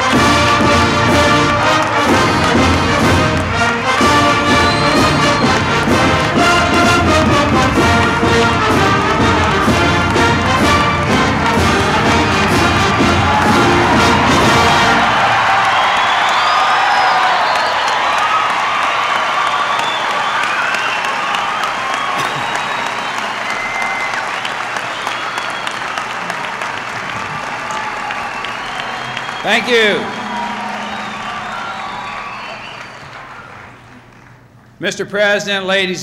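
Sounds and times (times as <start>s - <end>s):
brass section playing fanfare: 0.0s - 16.3s, 27.5s - 33.7s
crowd applause and cheering: 0.0s - 34.8s.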